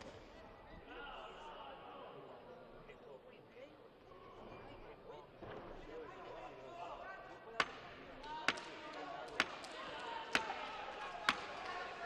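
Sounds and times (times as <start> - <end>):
sharp claps or knocks: 7.6 - 11.8.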